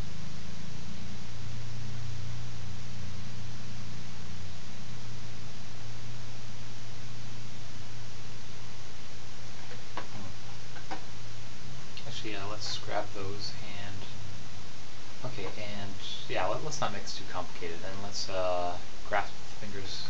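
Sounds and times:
low hum with hiss: 0.0 - 20.0.

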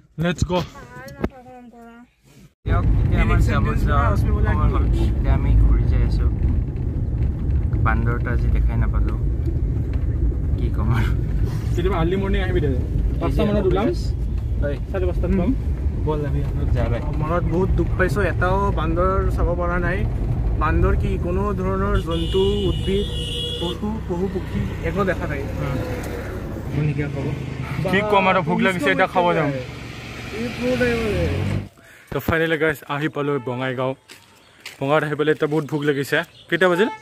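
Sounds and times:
voices in a car: 2.7 - 6.3, 10.6 - 20.0, 20.6 - 31.5
man talking: 11.8 - 25.8, 26.7 - 29.7, 32.1 - 34.0, 34.8 - 37.0.

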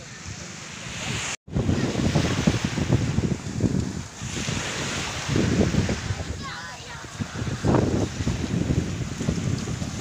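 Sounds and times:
small waves washing onto shore: 0.0 - 10.0
wind buffeting microphone: 0.0 - 10.0.

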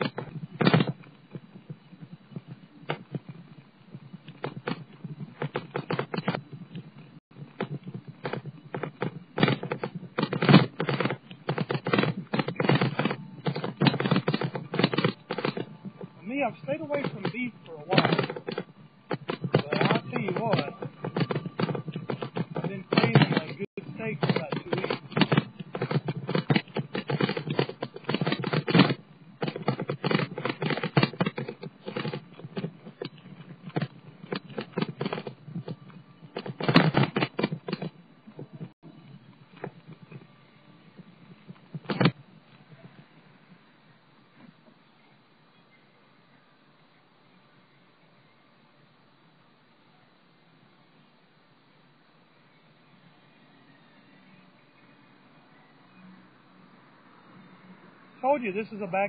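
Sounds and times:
bicycle rattling over pavement: 0.0 - 40.3, 40.9 - 43.0.

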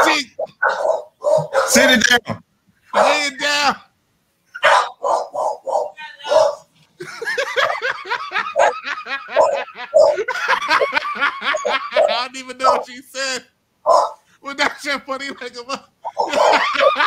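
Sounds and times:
men laughing hard: 7.0 - 12.8, 14.6 - 17.0.

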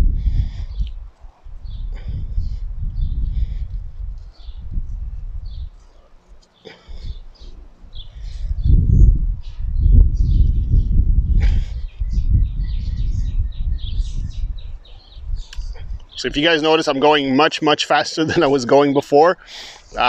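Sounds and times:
wind on microphone: 0.0 - 6.1, 6.9 - 16.5
small birds chirping: 0.2 - 20.0.

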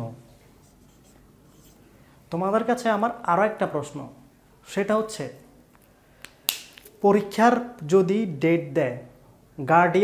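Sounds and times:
marker pen writing on whiteboard: 0.5 - 1.8.

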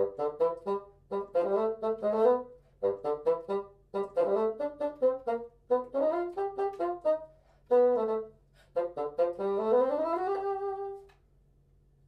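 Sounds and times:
solo bassoon: 0.0 - 11.3.

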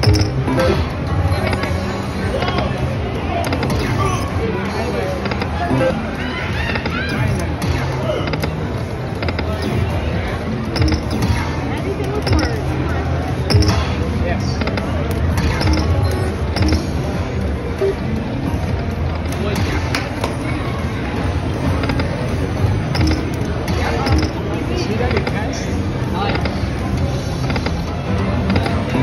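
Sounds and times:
slot machine music: 0.0 - 1.9, 5.6 - 6.2, 9.6 - 11.6, 12.2 - 14.0, 15.4 - 18.4, 22.1 - 24.5
slot machine spin sounds: 0.0 - 1.9, 5.7 - 6.2, 13.5 - 14.0, 15.4 - 17.2
background chatter: 0.0 - 29.0.

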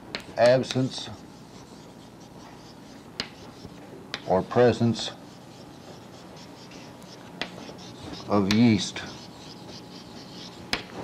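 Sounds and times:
chalk scratching on blackboard: 0.5 - 11.0
sharp chalk tap: 3.2 - 4.3, 7.4 - 8.8, 10.7 - 11.0.

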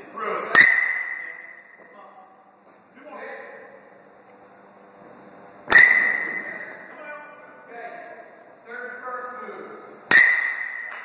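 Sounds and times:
metal bat hitting ball: 0.5 - 1.8, 5.7 - 6.8, 10.1 - 11.0.

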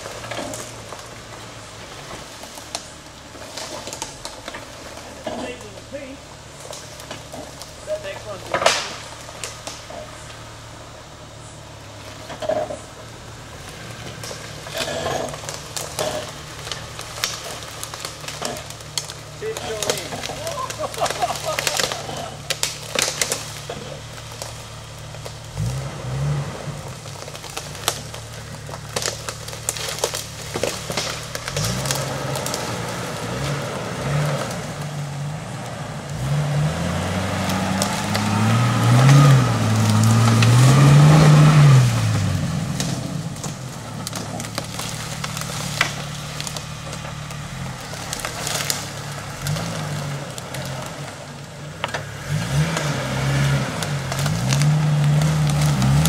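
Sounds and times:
engine pulling at low revs: 0.0 - 56.0
sticks crackling under tyres: 0.0 - 56.0.

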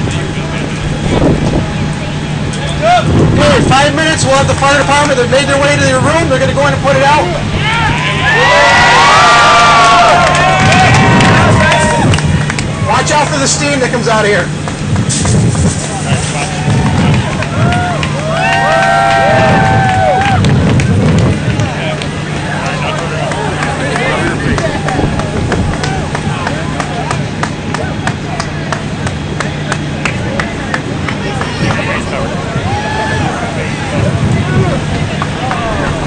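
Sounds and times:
people talking: 0.0 - 8.3, 10.2 - 18.0, 20.9 - 36.0
engine humming: 0.0 - 36.0
fire crackling and popping: 10.5 - 31.9.

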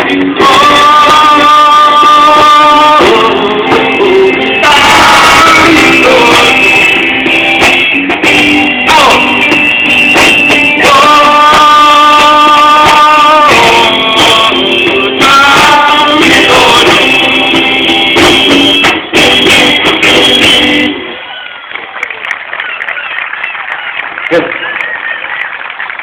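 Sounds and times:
person singing: 0.0 - 7.1, 8.7 - 9.8, 10.7 - 18.4
live rock band playing: 0.0 - 21.2.

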